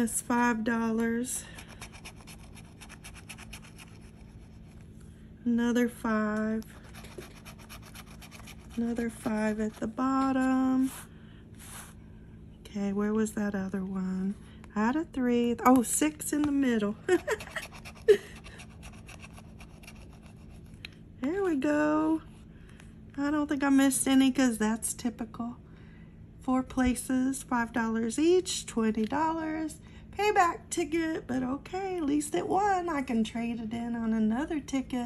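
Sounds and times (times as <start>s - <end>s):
metal tool scraping scratch ticket: 1.6s - 4.4s, 6.8s - 9.0s
woman laughing: 17.0s - 18.6s.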